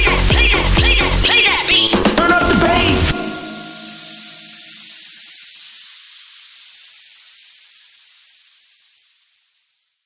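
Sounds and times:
high noise wash: 0:00.2 - 0:07.8.

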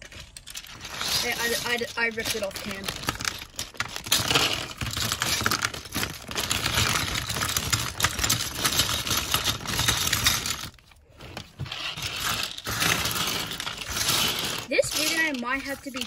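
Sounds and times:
plastic bag crinkling: 0:00.0 - 0:16.0
plastic bricks rattling: 0:00.0 - 0:16.0.

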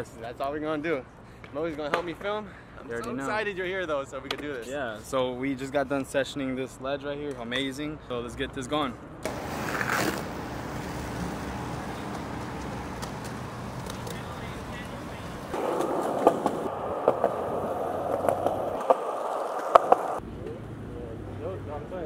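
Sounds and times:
outdoor street noise: 0:00.0 - 0:22.0
skateboard clacks: 0:09.2 - 0:20.2
skateboard wheels rolling on concrete: 0:09.2 - 0:20.6.

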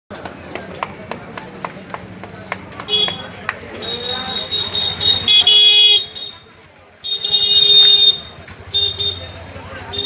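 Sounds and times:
vehicle horn honking: 0:02.9 - 0:10.0.

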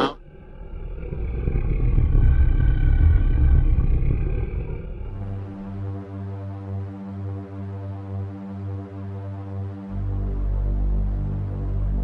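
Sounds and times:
deep rumbling swell: 0:00.0 - 0:06.2.

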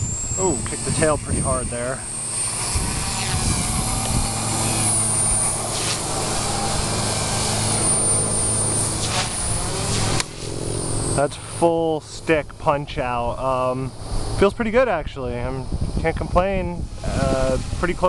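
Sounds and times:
high motor whine: 0:00.0 - 0:18.0
rotor hum: 0:00.0 - 0:18.0.

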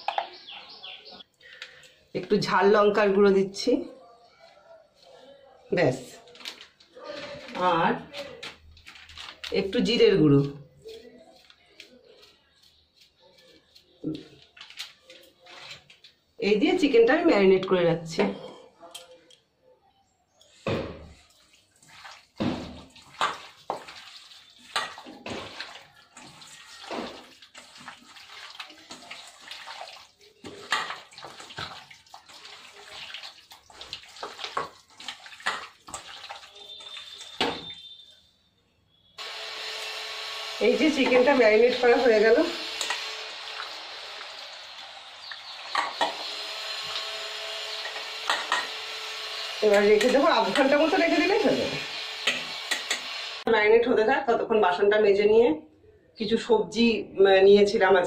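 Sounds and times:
wet squelching of marinade: 0:21.2 - 0:38.1.

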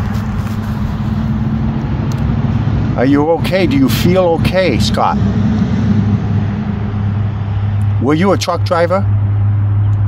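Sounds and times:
road traffic noise: 0:00.0 - 0:10.0.

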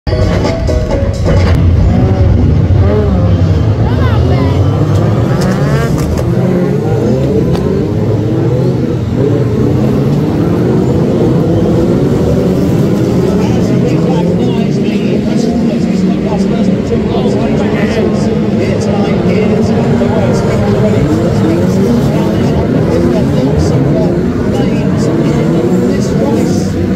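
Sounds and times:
racing car engines: 0:00.1 - 0:26.9.

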